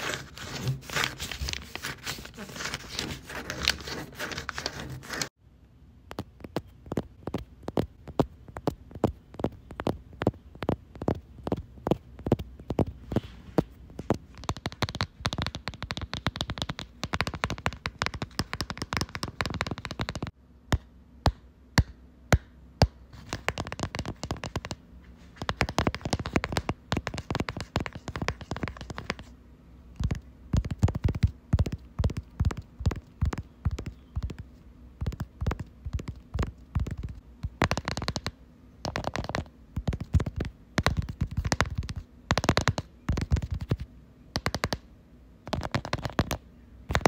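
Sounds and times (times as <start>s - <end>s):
scratchy rolling texture: 0.0s - 5.3s, 6.4s - 20.3s, 35.0s - 43.8s
fast tapping and clicking: 6.1s - 13.1s, 13.9s - 20.4s, 23.2s - 24.8s, 25.4s - 29.3s, 30.0s - 43.8s, 44.4s - 44.8s, 45.5s - 47.0s.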